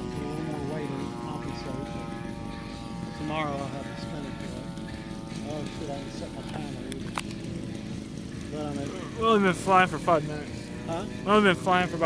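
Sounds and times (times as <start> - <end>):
men talking: 0.0 - 12.0
model plane engine running: 0.0 - 12.0.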